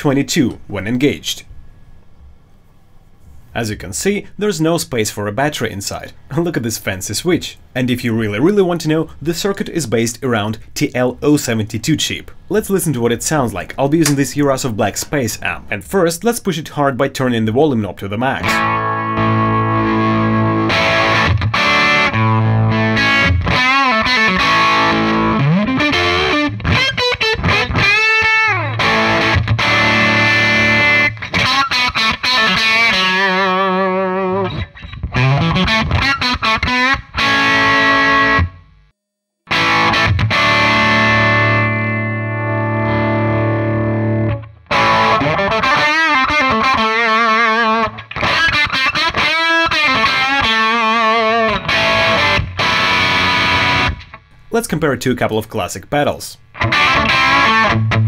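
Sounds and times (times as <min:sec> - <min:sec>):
overdriven electric guitar: 0:18.4 - 0:38.7, 0:39.5 - 0:54.5, 0:56.5 - 0:58.0.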